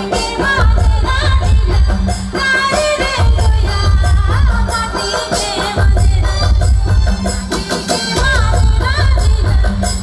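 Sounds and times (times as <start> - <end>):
pulsing drum beat: 0.0 - 10.0.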